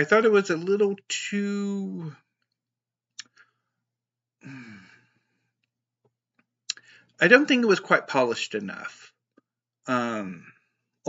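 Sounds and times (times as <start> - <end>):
man sighing: 4.4 - 5.1.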